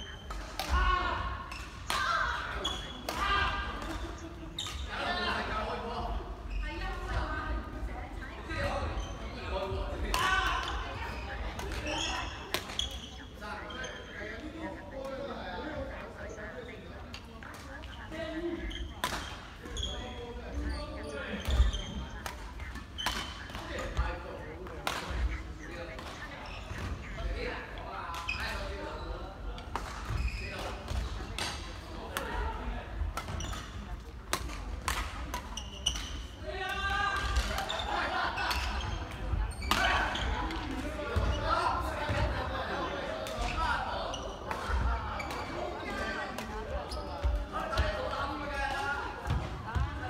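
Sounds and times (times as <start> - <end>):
players talking: 0.0 - 50.0.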